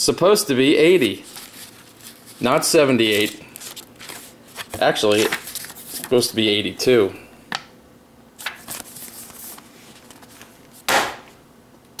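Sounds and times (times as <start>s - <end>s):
paper rustling: 1.0s - 6.2s, 8.4s - 10.8s
book slapping on desk: 10.9s - 11.3s.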